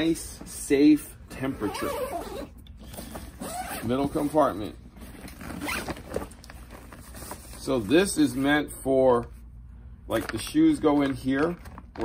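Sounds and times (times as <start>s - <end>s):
zipper being pulled open: 1.6s - 2.6s, 3.3s - 4.0s, 5.3s - 6.0s.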